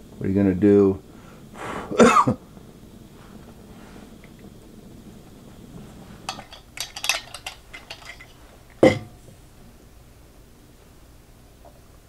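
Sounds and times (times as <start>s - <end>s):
man coughing: 1.9s - 2.4s.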